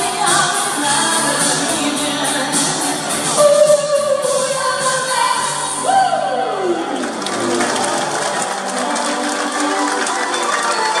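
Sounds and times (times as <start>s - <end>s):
faint live music: 0.0s - 11.0s
audience applauding: 6.5s - 11.0s.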